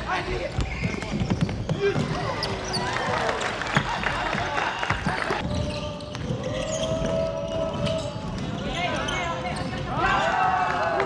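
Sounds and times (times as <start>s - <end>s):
players' voices: 0.0s - 11.0s
sneakers squealing on floor: 0.1s - 4.0s, 4.7s - 10.5s.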